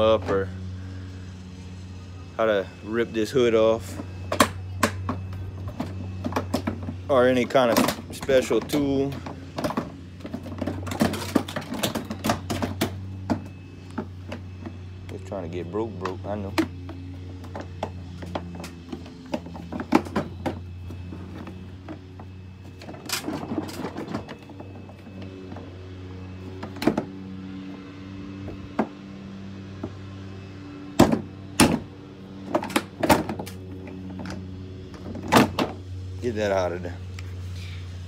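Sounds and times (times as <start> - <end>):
steady low hum: 0.0 - 38.0
hard plastic knocks and clatters: 4.0 - 14.8, 16.5 - 25.6.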